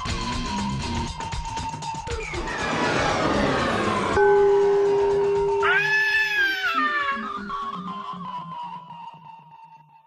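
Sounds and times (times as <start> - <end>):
steady held note: 3.7 - 7.5
pitched cry rising and falling: 5.4 - 7.6.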